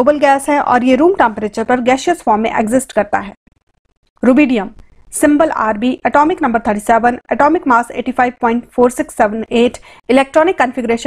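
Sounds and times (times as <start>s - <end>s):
woman narrating: 0.0s - 3.4s, 4.2s - 11.0s.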